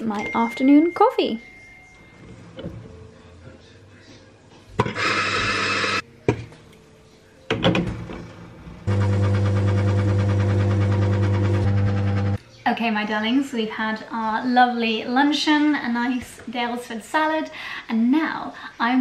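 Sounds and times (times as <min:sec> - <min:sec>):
espresso machine pump humming: 0:08.9 - 0:12.4.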